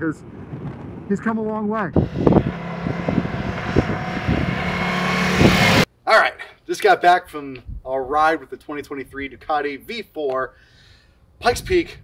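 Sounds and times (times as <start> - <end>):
motorcycle engine running: 2.0 - 5.9.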